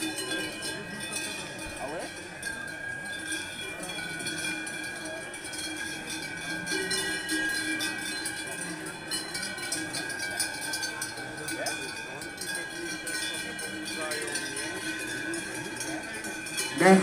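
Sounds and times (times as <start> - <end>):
cowbells clanging: 0.0 - 17.0
murmur of crowd voices: 0.0 - 17.0.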